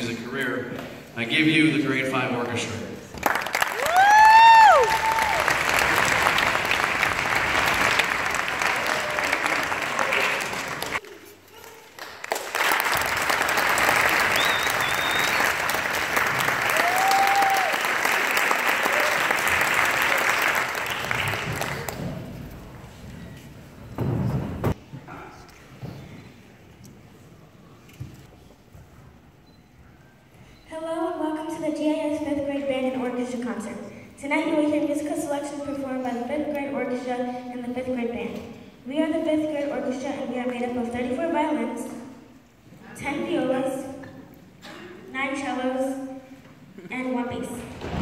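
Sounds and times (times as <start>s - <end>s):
audience applauding: 3.2s - 11.1s, 11.8s - 22.6s
loud rising and falling whistle: 14.3s - 15.6s.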